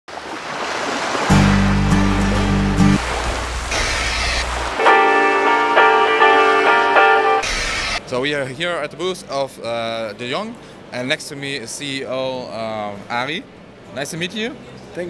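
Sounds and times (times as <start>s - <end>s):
intro music with synth chords: 1.3s - 7.4s.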